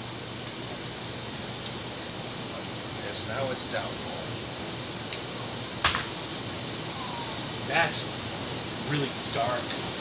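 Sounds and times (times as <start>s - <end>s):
background hiss: 0.0s - 10.0s
sharp click: 5.8s - 6.2s.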